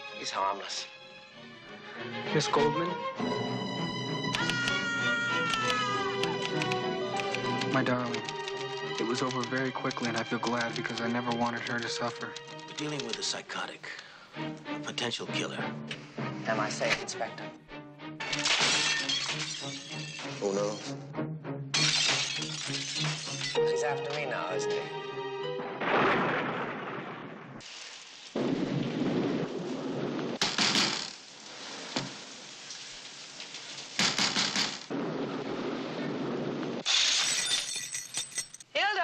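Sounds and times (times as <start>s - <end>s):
glass shattering: 18.2s - 20.9s, 21.7s - 23.6s, 30.4s - 31.2s, 33.8s - 34.9s, 36.8s - 38.7s
music with low sustained notes: 22.8s - 25.9s
steady rain: 25.8s - 36.8s.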